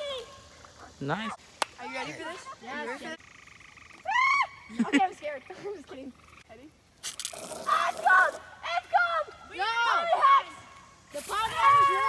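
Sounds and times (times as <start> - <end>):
girl screaming: 4.0 - 4.7, 7.6 - 10.7, 11.3 - 12.0
children squealing and laughing: 4.0 - 5.8, 7.4 - 12.0.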